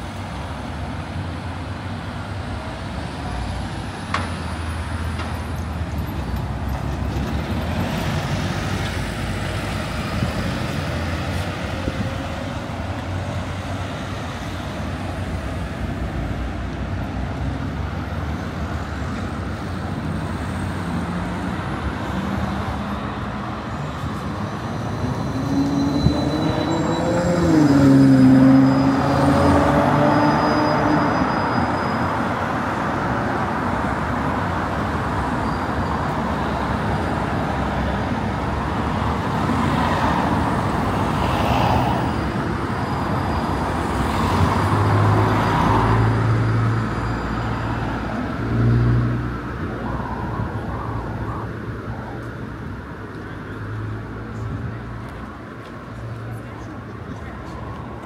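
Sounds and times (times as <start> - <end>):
cars and buses passing: 0.0 - 58.0.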